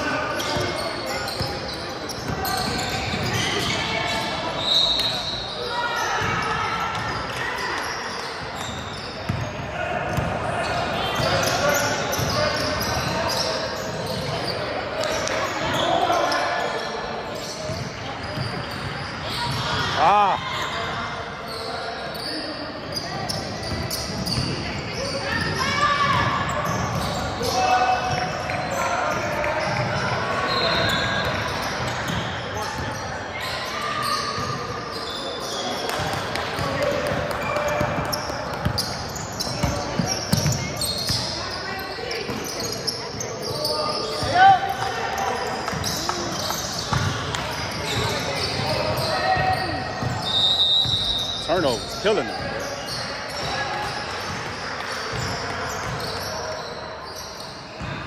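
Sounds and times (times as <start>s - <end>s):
sneakers squeaking: 0.0s - 58.0s.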